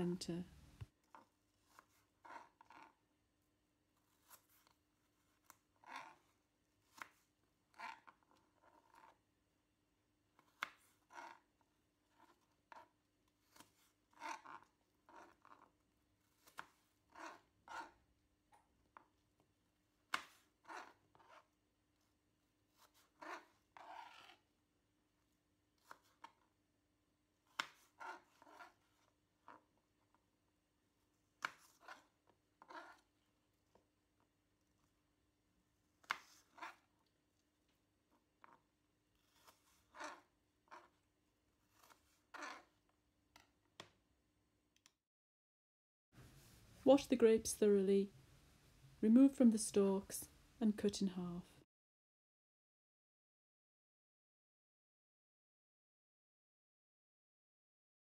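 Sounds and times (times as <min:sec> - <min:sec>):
knife cutting apple on chopping board: 0:13.3 - 0:18.0, 0:22.7 - 0:24.4.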